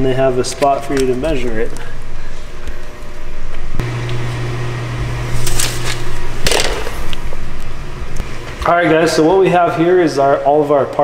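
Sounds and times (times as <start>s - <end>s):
steady low hum: 0.0s - 11.0s
paper rustling: 5.3s - 7.1s.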